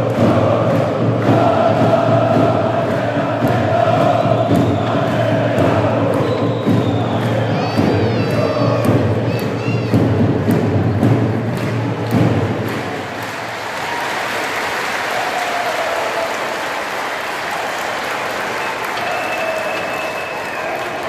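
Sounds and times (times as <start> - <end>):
crowd chanting: 0.0 - 10.0
voices singing: 0.0 - 10.2
heavy low beats: 0.0 - 13.2
crowd applauding and cheering: 0.0 - 21.0.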